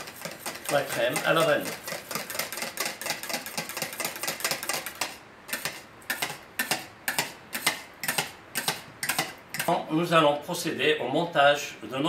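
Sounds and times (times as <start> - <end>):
whisk clicking against metal bowl: 0.0 - 9.8.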